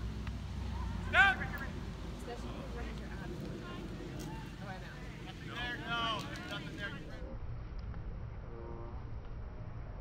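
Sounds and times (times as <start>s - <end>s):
faint outdoor background noise: 0.0s - 10.0s
person shouting: 0.8s - 1.5s.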